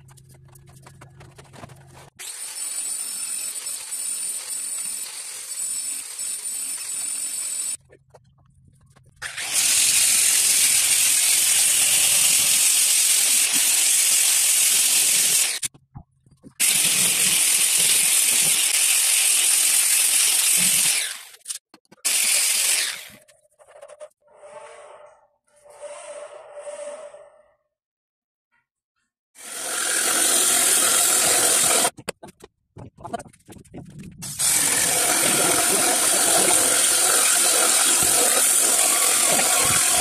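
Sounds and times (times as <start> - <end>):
angle grinder polishing stone: 29.4 - 32.0, 34.2 - 40.0.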